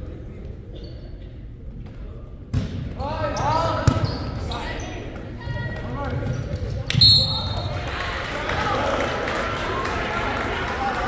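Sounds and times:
spectators' voices: 0:03.0 - 0:11.0.

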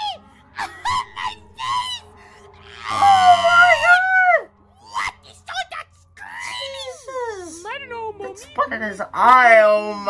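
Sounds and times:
wavering shriek: 0:00.0 - 0:07.2.

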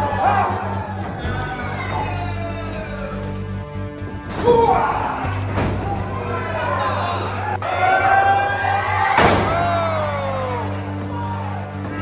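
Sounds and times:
voices shouting: 0:00.0 - 0:03.3, 0:04.4 - 0:12.0
music with steady bass: 0:00.0 - 0:12.0
bodies slamming onto mat: 0:09.2 - 0:09.6.

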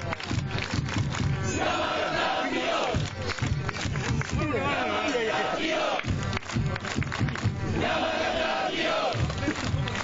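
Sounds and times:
rhythmic clapping: 0:00.0 - 0:10.0
crowd chanting in unison: 0:01.4 - 0:03.5, 0:04.2 - 0:06.2, 0:07.6 - 0:09.5.

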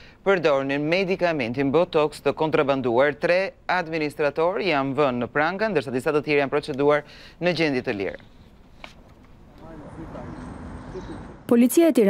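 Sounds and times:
low traffic rumble: 0:01.2 - 0:11.8.

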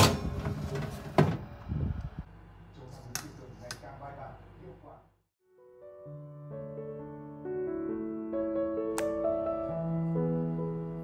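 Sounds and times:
oven humming: 0:00.0 - 0:05.1.

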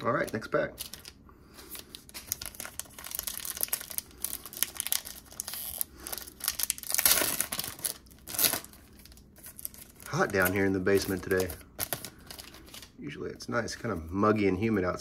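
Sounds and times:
foil wrapper tearing and crinkling: 0:00.0 - 0:12.9.

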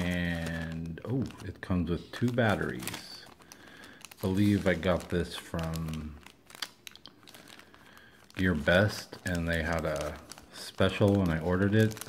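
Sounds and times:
plastic zip bag crinkling: 0:00.0 - 0:12.0.

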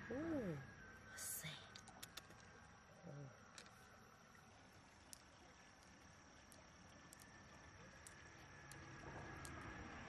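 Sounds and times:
faint outdoor background: 0:00.0 - 0:10.0
soft clicks of pearls: 0:01.2 - 0:02.7, 0:03.4 - 0:03.9, 0:04.9 - 0:10.0.

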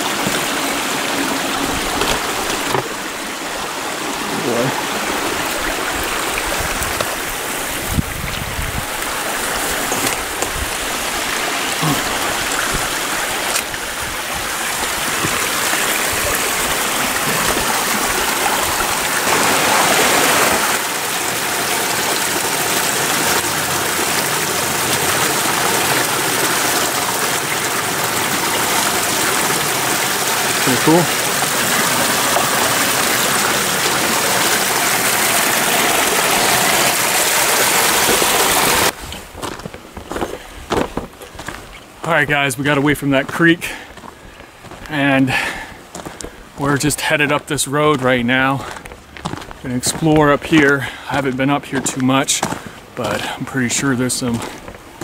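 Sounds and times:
creek splashing over rocks: 0:00.0 - 0:55.0.

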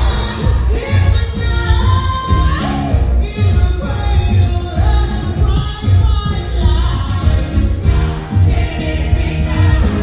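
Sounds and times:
ensemble singing in chorus: 0:00.0 - 0:03.2, 0:06.2 - 0:10.0
pop-rock band with heavy beat: 0:00.0 - 0:10.0.

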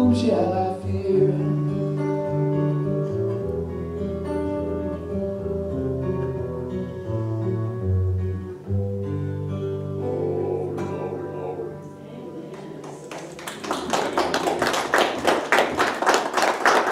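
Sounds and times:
acoustic guitar chords: 0:00.0 - 0:16.9
audience clapping: 0:12.5 - 0:16.9.

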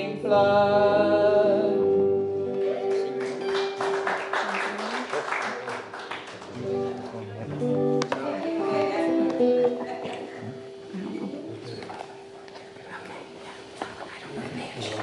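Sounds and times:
guitar picked notes: 0:00.0 - 0:04.4, 0:06.5 - 0:12.8.

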